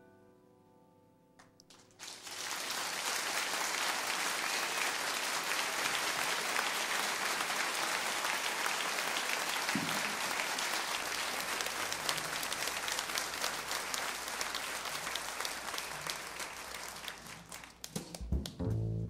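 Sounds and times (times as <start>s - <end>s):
audience applauding: 1.6s - 18.6s.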